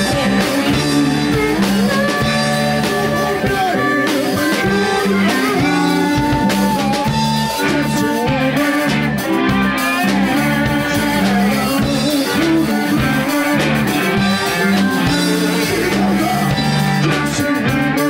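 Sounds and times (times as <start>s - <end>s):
blues-rock band playing: 0.0s - 18.0s
man singing: 0.0s - 18.0s.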